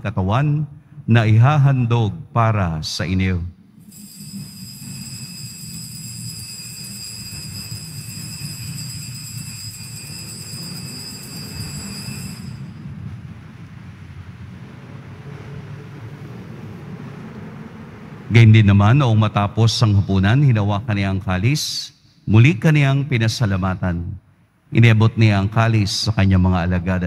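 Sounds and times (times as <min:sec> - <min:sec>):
low room rumble: 0:00.0 - 0:27.0
altar bells ringing: 0:03.8 - 0:12.9.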